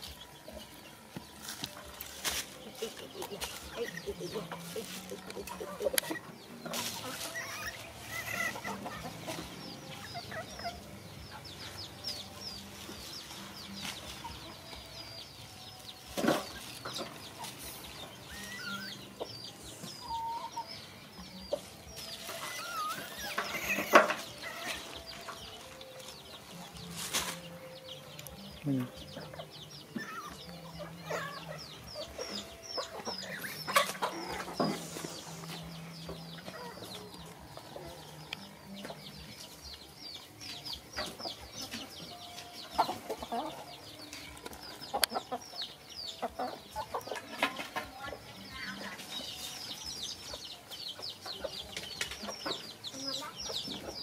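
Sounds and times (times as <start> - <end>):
chickens clucking: 0.0 - 54.0.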